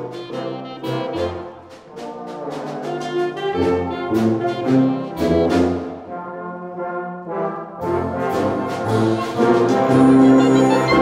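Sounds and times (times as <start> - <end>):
wind band playing: 0.0 - 11.0.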